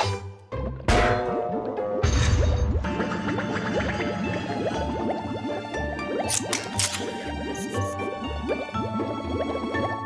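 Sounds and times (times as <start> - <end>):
cartoon background music: 0.0 - 10.0
watery bubbling bloops: 0.7 - 10.0.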